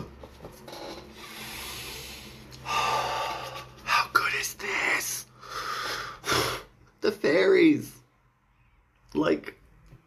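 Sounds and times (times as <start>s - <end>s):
person exhaling breathily: 1.2s - 3.8s.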